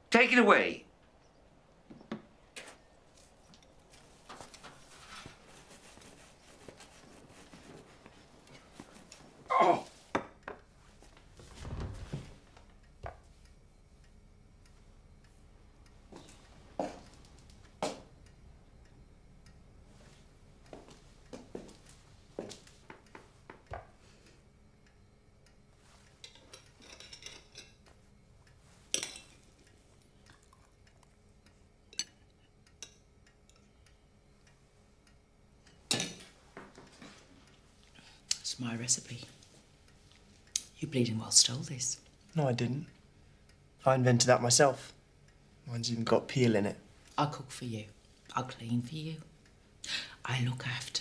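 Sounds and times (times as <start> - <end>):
cutlery on china plates: 26.2 - 27.8.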